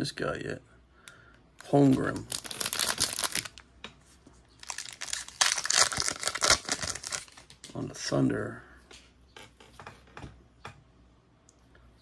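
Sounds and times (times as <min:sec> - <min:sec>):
plastic wrapper crinkling: 0:01.6 - 0:03.7, 0:04.6 - 0:07.7.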